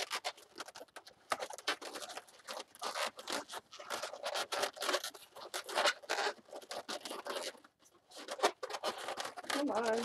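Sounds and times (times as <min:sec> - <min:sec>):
balloons squeaking and rubbing: 0:00.0 - 0:10.0.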